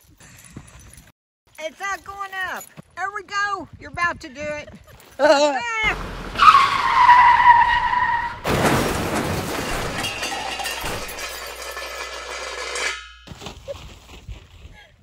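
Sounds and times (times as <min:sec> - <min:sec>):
railway carriage crashing: 0:05.9 - 0:13.5.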